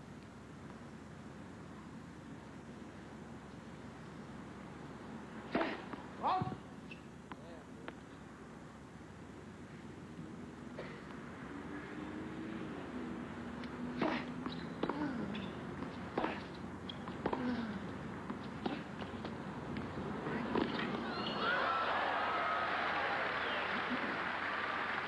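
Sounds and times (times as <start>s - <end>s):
crowd cheering and applause: 21.4s - 25.0s.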